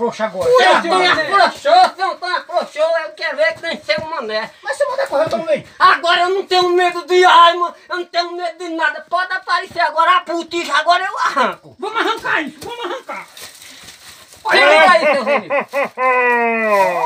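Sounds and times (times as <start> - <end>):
men talking excitedly: 0.0 - 17.0
man shouting: 0.3 - 13.0, 14.5 - 15.4.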